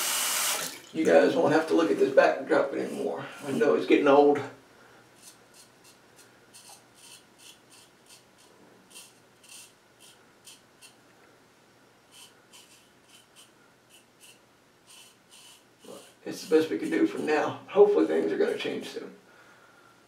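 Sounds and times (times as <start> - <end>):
razor scraping stubble: 5.2 - 11.0, 12.1 - 17.2.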